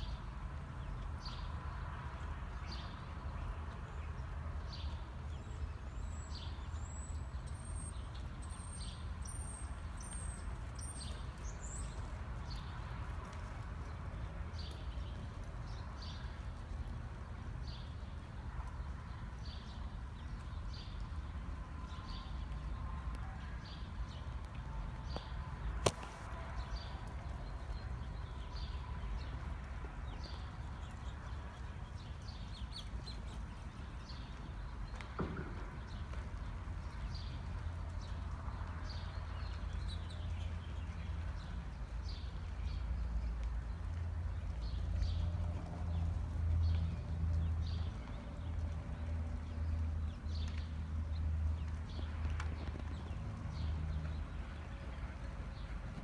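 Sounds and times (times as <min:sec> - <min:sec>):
horse hoofbeats on dirt: 0:09.8 - 0:22.7, 0:24.1 - 0:56.0.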